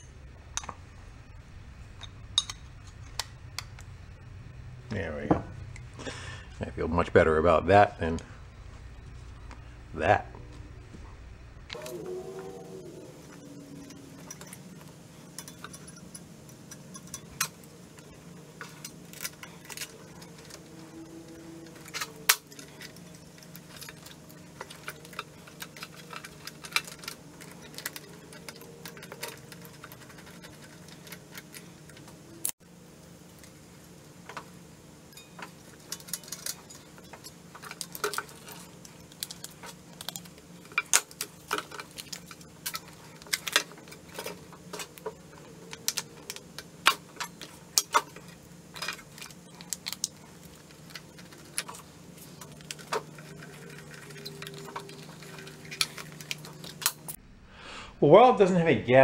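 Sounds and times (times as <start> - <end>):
low background hum: 0.0 - 59.0
clicks and clinks of parts: 13.3 - 32.6, 35.1 - 57.2.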